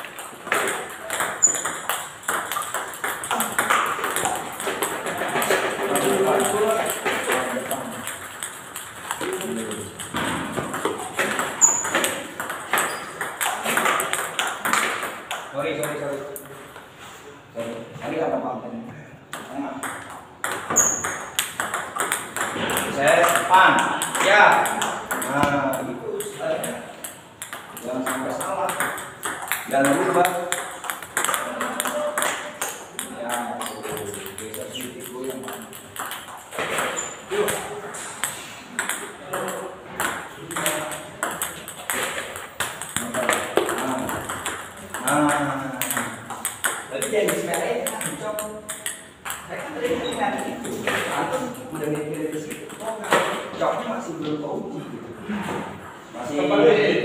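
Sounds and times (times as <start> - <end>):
ping-pong ball hits: 0.0 - 16.5, 19.3 - 53.6.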